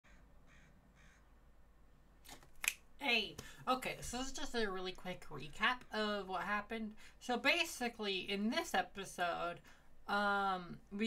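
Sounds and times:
distant bird calling: 0:00.0 - 0:01.3.

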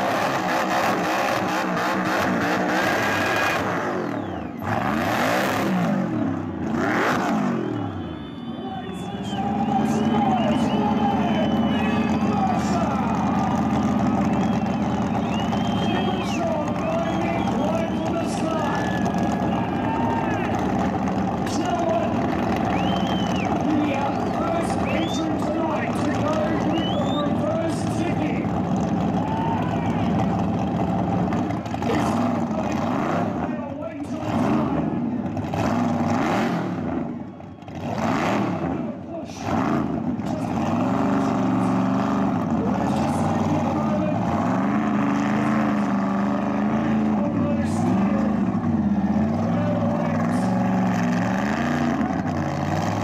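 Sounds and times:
car engine idling: 0:00.0 - 0:53.0.

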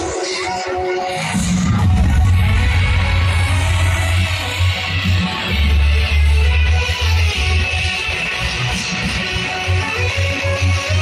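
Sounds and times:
electronic dance music: 0:00.0 - 0:11.0
heavy bass line: 0:01.5 - 0:07.7.

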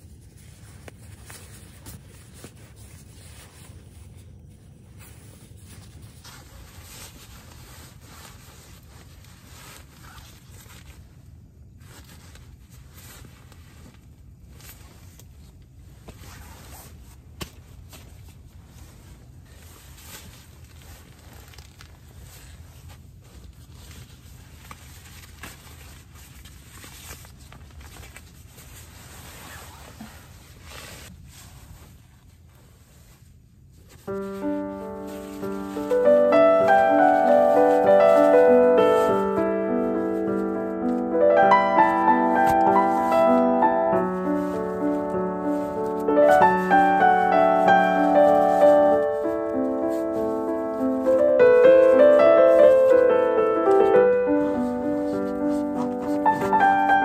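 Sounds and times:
steady low rumble: 0:00.0 - 0:08.9
nylon gear rustling and crinkling: 0:00.0 - 0:57.0.

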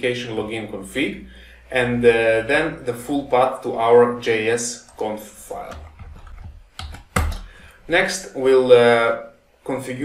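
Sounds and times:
keyboard keystrokes: 0:04.8 - 0:07.5.

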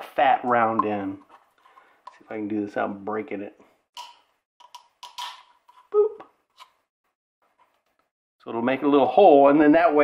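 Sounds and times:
eggshell clicking and scraping: 0:00.6 - 0:02.4, 0:04.0 - 0:08.1.

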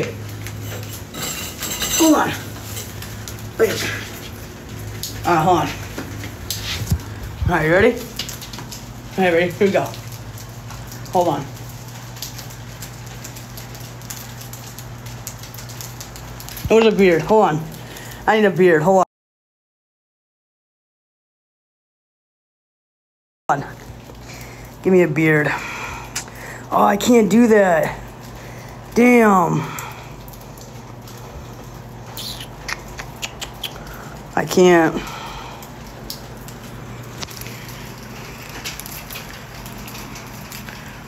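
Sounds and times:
steady low hum: 0:00.0 - 0:18.4
light rain pattering: 0:00.0 - 0:19.0, 0:23.5 - 0:41.0.

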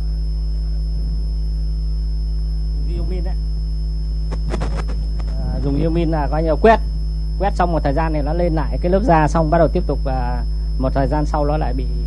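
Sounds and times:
electrical mains hum: 0:00.0 - 0:12.0
thin high-pitched whine: 0:00.0 - 0:12.0.

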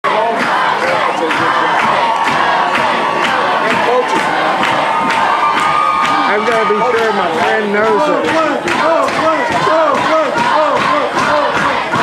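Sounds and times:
stadium crowd cheering and shouting: 0:00.0 - 0:12.0
steady beat: 0:00.1 - 0:12.0.

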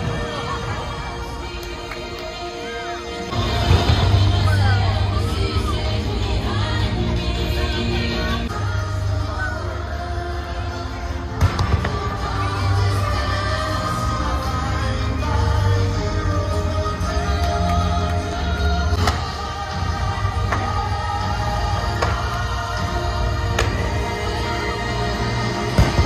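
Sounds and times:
orchestral music over speakers: 0:00.0 - 0:26.0
firework bangs: 0:11.4 - 0:12.2, 0:25.7 - 0:26.0.

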